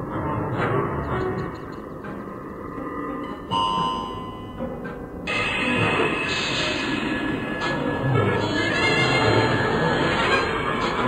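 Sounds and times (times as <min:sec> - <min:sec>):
grainy low electronic texture: 0:00.0 - 0:11.0
bright sustained tones: 0:01.9 - 0:11.0.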